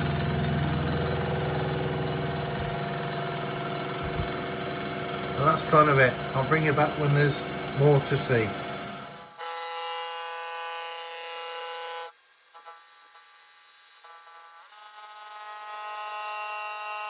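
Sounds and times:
milling machine whine: 0.0 - 9.7.

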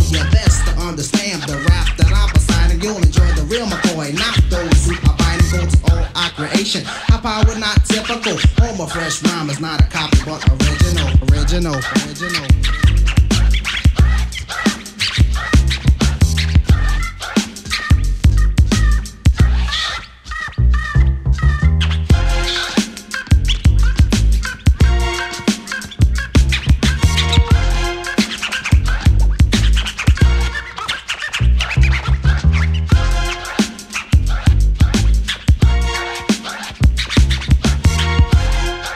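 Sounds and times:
deep bass: 0.0 - 6.6, 9.9 - 14.5, 15.2 - 17.2, 17.9 - 19.9, 20.6 - 25.3, 26.0 - 30.7, 31.4 - 33.6, 34.2 - 36.1, 36.8 - 38.9
hip hop drum beat: 0.0 - 19.8, 22.1 - 31.1, 32.8 - 38.9
turntable scratching: 0.0 - 38.9.

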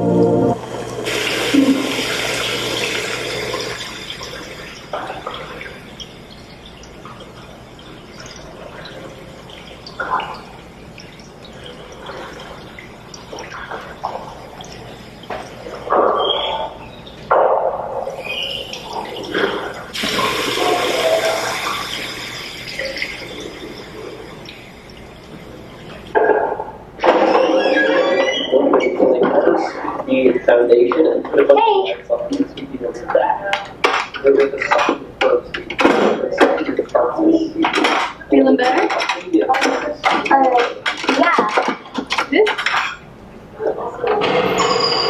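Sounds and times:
toilet flush rushing: 0.0 - 45.0
water splashing at a sink: 0.8 - 44.7
voices talking: 27.0 - 42.6.

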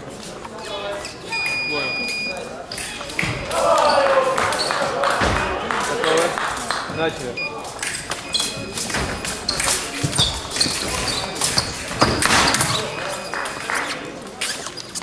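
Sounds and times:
voices in a hall: 0.0 - 15.0.

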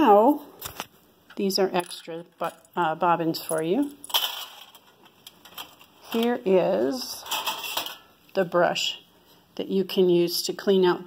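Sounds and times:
bobbins rattling in metal tin: 3.5 - 6.4, 7.1 - 8.1.

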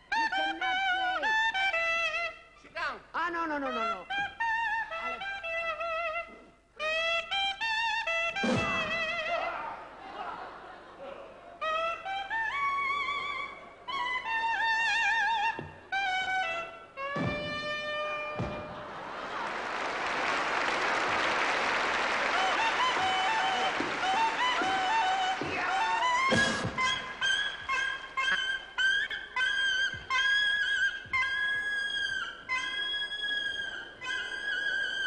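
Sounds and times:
clarinet playing: 0.0 - 2.6, 3.6 - 9.5, 11.6 - 19.3, 20.6 - 35.0.

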